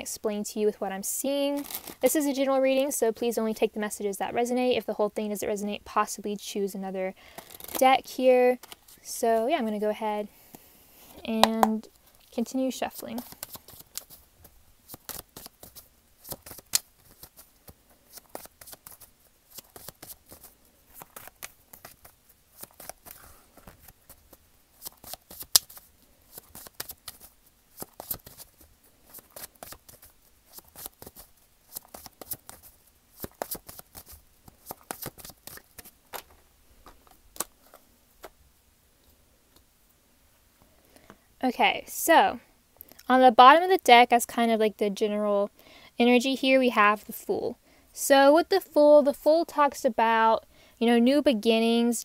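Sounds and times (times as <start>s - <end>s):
cards being shuffled: 1.6s - 2.2s, 7.3s - 8.0s, 8.6s - 9.0s, 12.8s - 38.4s.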